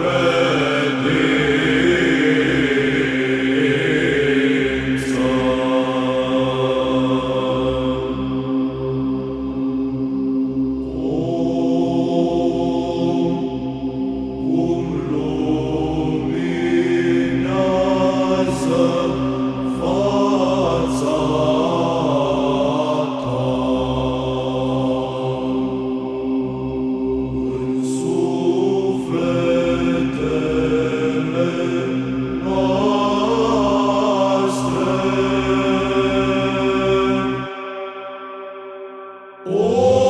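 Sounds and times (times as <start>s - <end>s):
chant melody: 0.0s - 40.0s.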